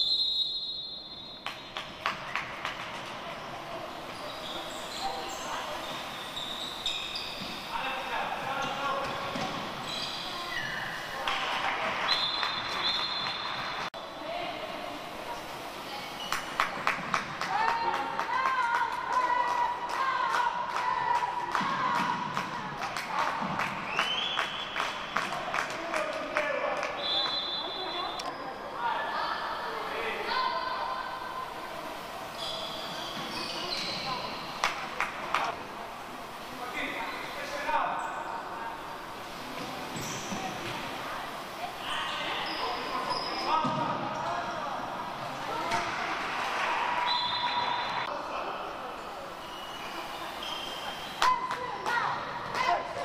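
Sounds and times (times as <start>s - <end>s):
high thin squeal: 4.1s - 8.8s, 9.8s - 11.2s, 32.3s - 34.6s, 49.4s - 51.3s.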